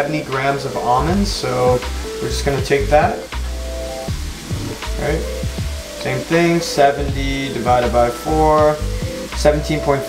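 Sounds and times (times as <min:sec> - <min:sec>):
background music: 0:00.0 - 0:10.0
chicken sizzling in a pan: 0:00.0 - 0:10.0.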